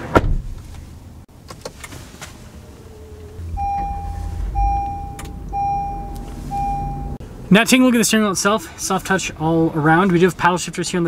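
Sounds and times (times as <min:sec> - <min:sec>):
low rumble: 0:02.7 - 0:07.5
dashboard warning chime: 0:02.8 - 0:07.2.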